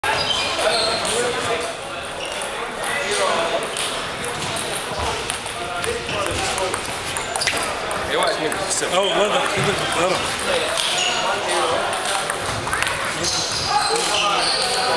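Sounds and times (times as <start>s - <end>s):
people talking in echoing hall: 0.0s - 14.9s
table tennis balls clicking: 2.2s - 14.9s.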